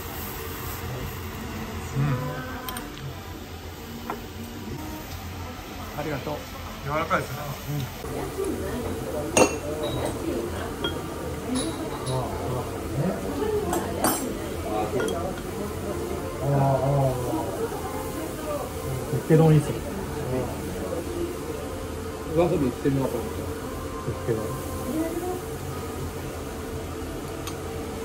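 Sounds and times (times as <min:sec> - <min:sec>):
steady buzzing hum: 0:00.0 - 0:28.0
tableware clink: 0:09.3 - 0:10.2, 0:10.8 - 0:12.3, 0:13.7 - 0:14.4, 0:15.0 - 0:15.5.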